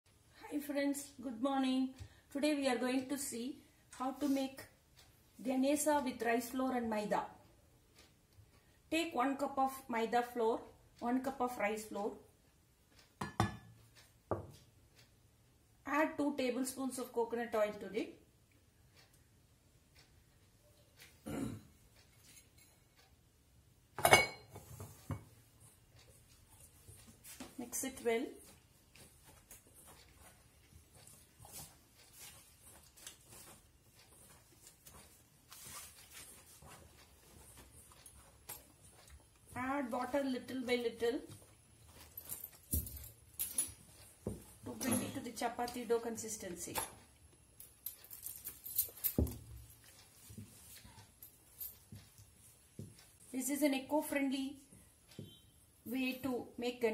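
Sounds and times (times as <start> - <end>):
woman speaking: 0.4 - 4.7, 5.4 - 7.4, 8.9 - 12.2, 15.8 - 18.2, 27.6 - 28.5, 39.5 - 41.4, 44.6 - 47.0, 53.3 - 54.7, 55.9 - 56.9.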